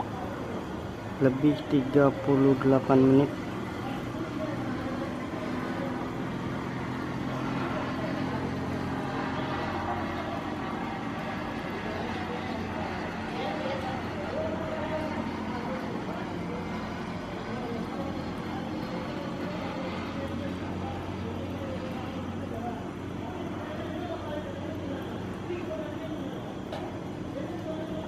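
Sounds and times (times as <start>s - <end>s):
distant indistinct voices: 0.0s - 28.0s
low machinery hum: 0.0s - 28.0s.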